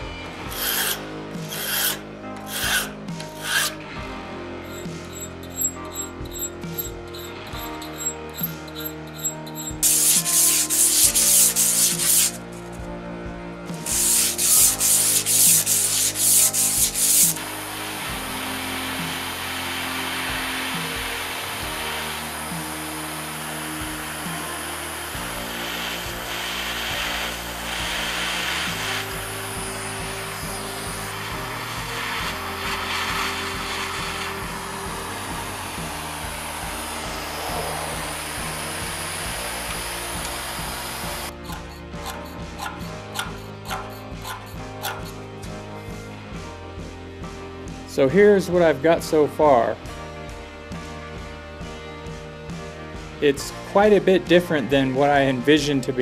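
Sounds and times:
background music: 0.0s - 56.0s
gas torch flame hissing: 0.4s - 3.8s, 4.7s - 12.8s, 13.8s - 45.2s
hand file scraping steel: 0.5s - 3.8s, 4.6s - 12.8s, 13.8s - 45.3s.

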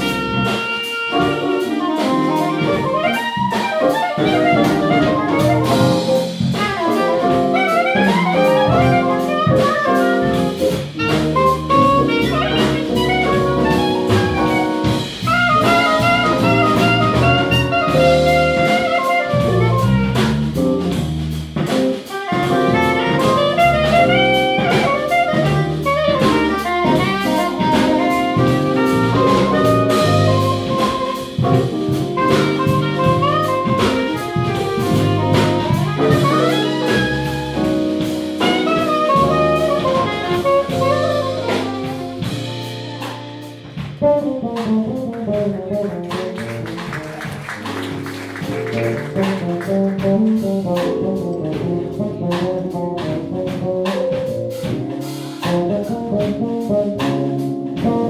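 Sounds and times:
drum kit: 0.0s - 58.0s
electric bass: 0.0s - 58.0s
electric keyboard: 0.0s - 58.0s
saxophone melody: 0.0s - 58.0s.

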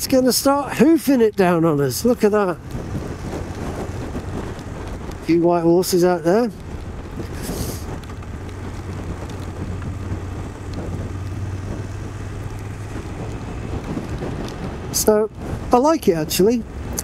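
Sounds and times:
wind rushing over microphone: 0.0s - 17.0s
motorcycle engine running: 2.1s - 15.8s.

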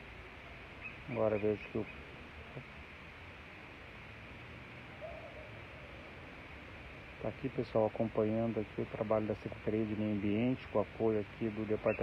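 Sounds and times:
outdoor background noise: 0.0s - 12.0s
faint wavering call: 4.9s - 5.9s.

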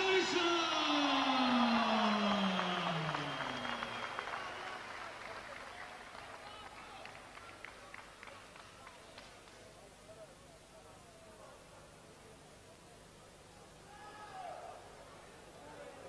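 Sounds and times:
people clapping: 0.0s - 9.9s
crowd noise: 0.0s - 13.9s.

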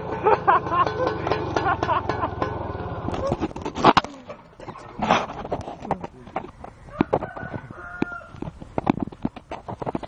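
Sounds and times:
rooster crowing: 6.9s - 8.4s.

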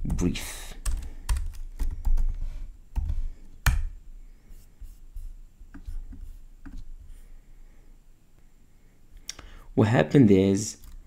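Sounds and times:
computer keyboard typing: 0.0s - 2.4s, 10.8s - 11.0s.

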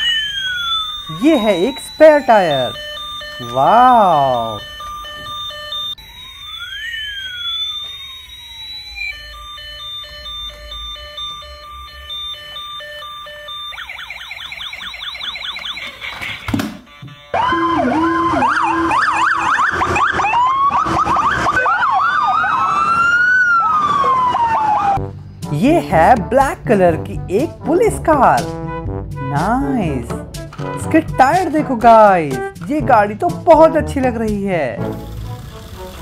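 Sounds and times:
electronic toy siren: 0.0s - 25.0s
police sirens wailing: 0.0s - 25.1s.

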